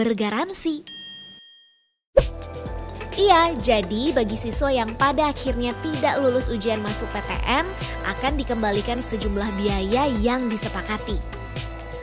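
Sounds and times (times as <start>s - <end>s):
bell-like chime: 0.9s - 2.0s, 8.2s - 11.6s
background music: 2.2s - 12.0s.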